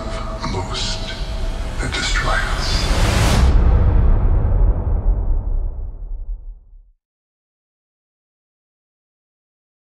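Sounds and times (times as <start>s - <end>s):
dense wash of noise: 0.0s - 6.4s
deep rumble: 0.0s - 7.0s.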